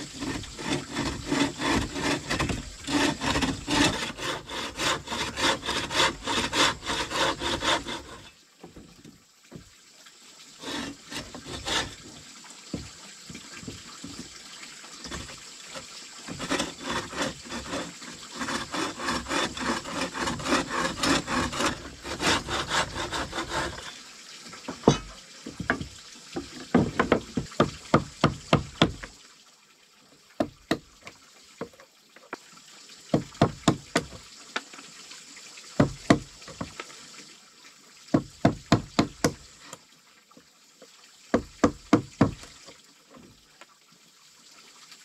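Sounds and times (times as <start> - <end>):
bow saw cutting wood: 0.0 - 8.4, 10.6 - 12.9, 15.0 - 24.0
knocks on wood chisel: 26.7 - 29.1, 35.8 - 36.8, 38.1 - 39.4, 41.4 - 42.4.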